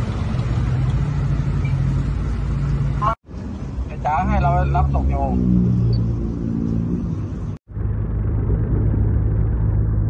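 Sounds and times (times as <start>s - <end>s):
low motor hum: 4.7s - 10.0s.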